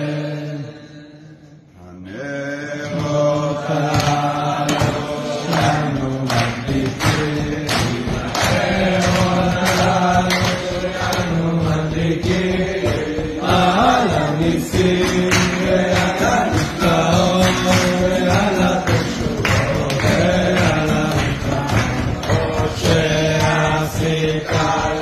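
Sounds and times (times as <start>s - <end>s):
group of men singing: 0.0s - 25.0s
sharp rhythmic strokes: 2.5s - 25.0s.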